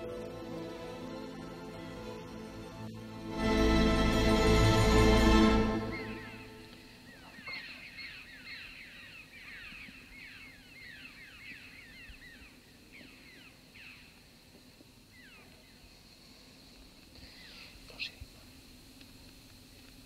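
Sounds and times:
small birds chirping: 0:05.9 - 0:14.3, 0:17.1 - 0:18.4.

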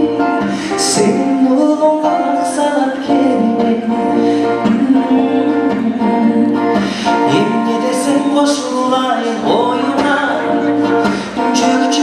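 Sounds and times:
acoustic guitar: 0:00.0 - 0:12.0
man singing into a microphone: 0:00.0 - 0:12.0.

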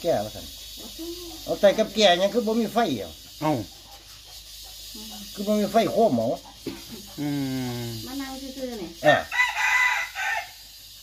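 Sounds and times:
rooster crowing: 0:09.0 - 0:10.8.

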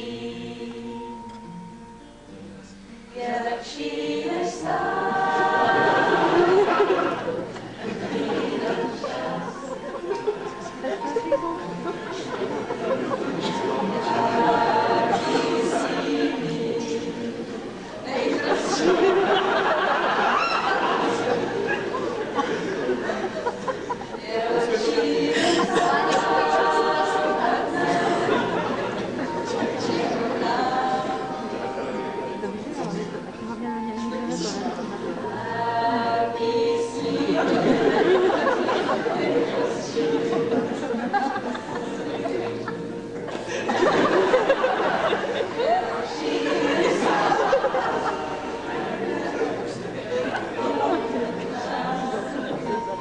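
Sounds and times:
choir singing held notes: 0:00.0 - 0:53.0.

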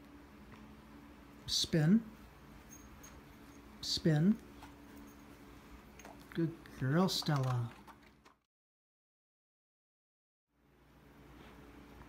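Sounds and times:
steady low hum: 0:00.0 - 0:08.3.

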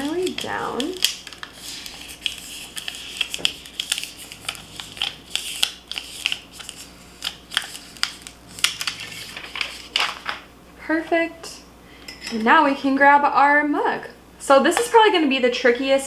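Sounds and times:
paper backing peeling off tape: 0:00.0 - 0:10.4.

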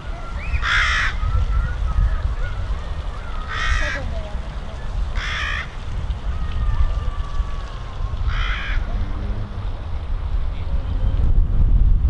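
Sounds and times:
wind rumble on microphone: 0:00.0 - 0:12.0
small birds whistling: 0:00.3 - 0:02.6
crow cawing: 0:00.6 - 0:01.2, 0:03.2 - 0:04.1, 0:05.2 - 0:05.8, 0:08.2 - 0:08.9.

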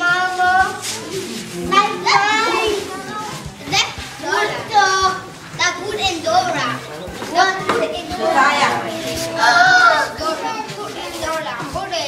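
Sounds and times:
children calling out and chattering: 0:00.0 - 0:12.0.

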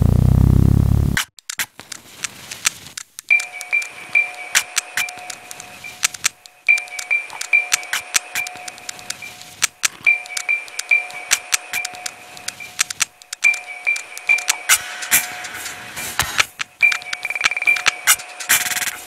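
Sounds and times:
sharp crackling clicks: 0:01.2 - 0:03.9, 0:04.6 - 0:14.9.

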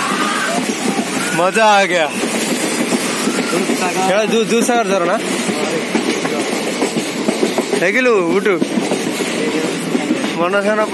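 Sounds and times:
train running noise inside coach: 0:00.0 - 0:10.9.

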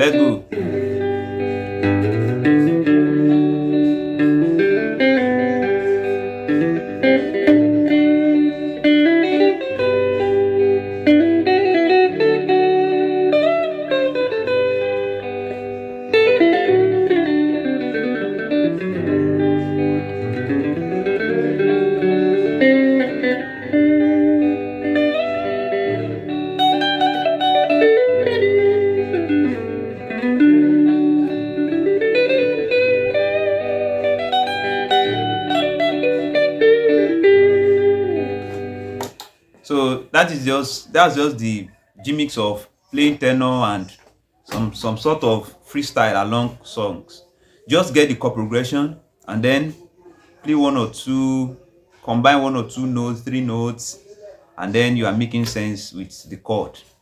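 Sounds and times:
guitar lead with slides: 0:00.0 - 0:55.7.

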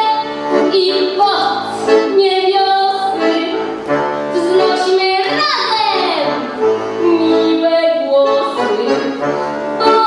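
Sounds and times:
girl singing a carol: 0:00.0 - 0:03.6, 0:04.3 - 0:06.4, 0:07.0 - 0:09.1, 0:09.8 - 0:10.0
accordion: 0:00.0 - 0:10.0.

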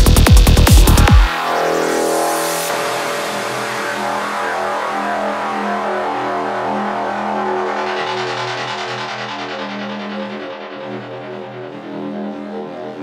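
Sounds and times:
held synthesizer tones: 0:01.2 - 0:12.2
hissing high synth layer: 0:01.3 - 0:11.8.

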